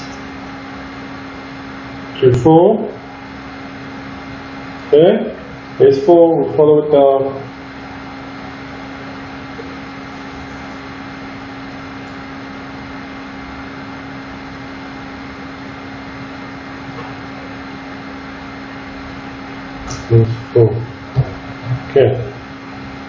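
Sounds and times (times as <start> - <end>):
constant low hum: 0.0 - 23.0.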